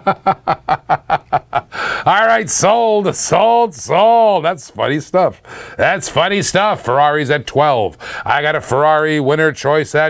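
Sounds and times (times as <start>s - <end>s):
man laughing: 0.0s - 1.9s.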